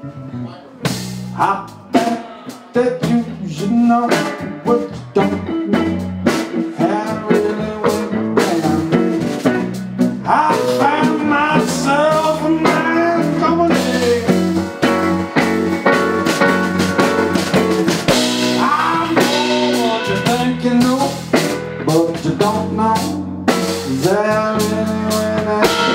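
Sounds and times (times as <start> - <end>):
electric bass: 0.0 - 25.9
electric guitar lead: 0.0 - 25.9
drum kit beat: 0.8 - 25.9.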